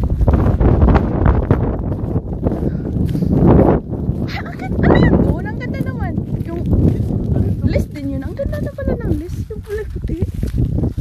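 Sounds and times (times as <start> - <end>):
wind buffeting microphone: 0.0 - 11.0
person's voice: 4.3 - 10.3.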